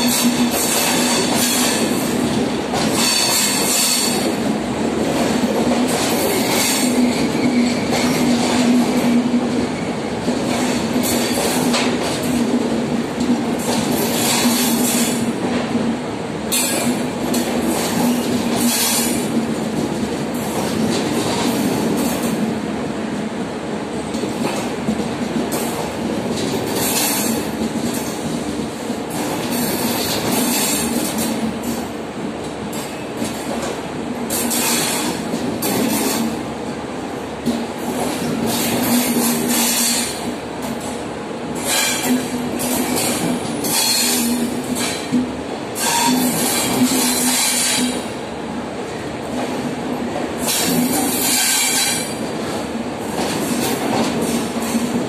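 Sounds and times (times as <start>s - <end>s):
train wheels clacking: 0.0s - 22.6s, 24.0s - 36.7s, 37.4s - 48.2s, 49.2s - 55.0s
train wheels humming on rails: 0.0s - 55.0s.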